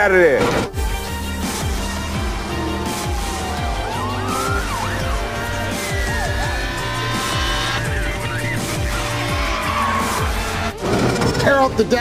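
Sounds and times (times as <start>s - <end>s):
music with heavy bass pulse: 0.8s - 11.3s
car engines revving: 0.8s - 11.4s
tyres squealing: 1.3s - 11.7s.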